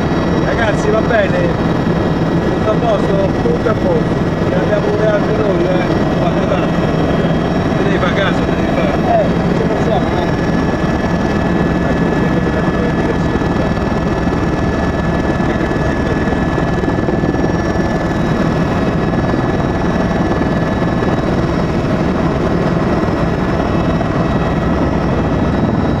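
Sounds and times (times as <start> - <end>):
aircraft engine noise in cabin: 0.0 - 26.0
faint steady whining tones: 0.0 - 26.0.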